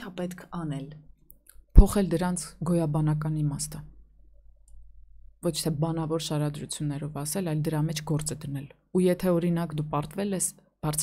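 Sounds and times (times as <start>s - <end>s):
woman speaking: 0.0s - 4.0s, 5.4s - 11.0s.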